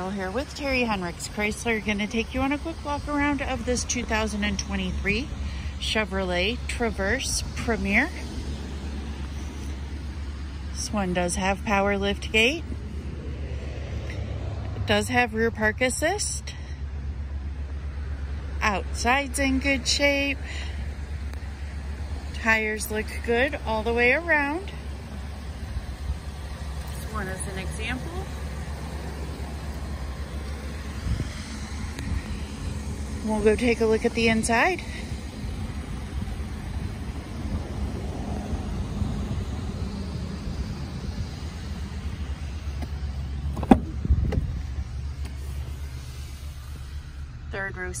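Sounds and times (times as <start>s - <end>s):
steady low rumble: 0.0s - 48.0s
faint outdoor hiss: 14.9s - 48.0s
brief bump: 43.5s - 44.5s.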